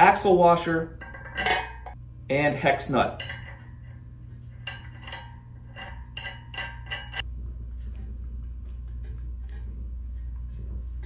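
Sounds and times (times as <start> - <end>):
metal nut clinking: 0.9 - 2.0, 3.1 - 7.2.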